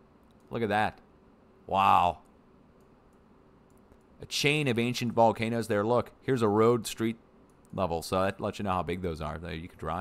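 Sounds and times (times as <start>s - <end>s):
man speaking: 0.5s - 1.0s, 1.7s - 2.2s, 4.2s - 7.2s, 7.8s - 10.0s
computer mouse clicks: 2.2s - 4.1s.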